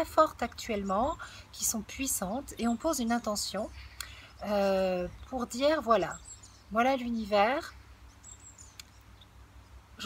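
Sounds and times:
faint high-pitched bird chirps: 0:00.3 - 0:10.0.

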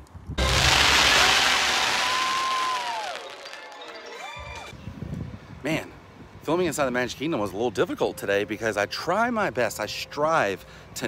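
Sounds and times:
fireworks rushing hiss: 0:00.4 - 0:03.7
show music with held notes: 0:00.4 - 0:04.7.

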